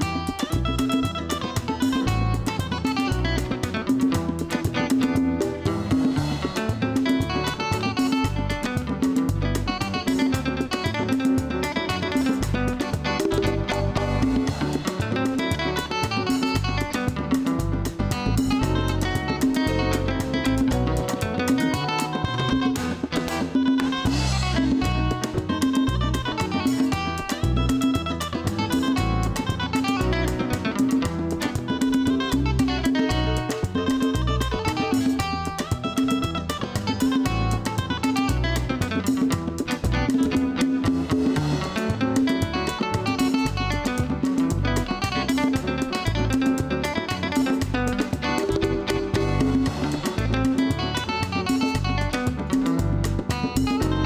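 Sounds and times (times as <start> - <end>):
acoustic guitar melody: 0.0 - 54.0
bass guitar: 0.0 - 54.0
congas: 0.0 - 54.0
drum kit: 0.0 - 54.0.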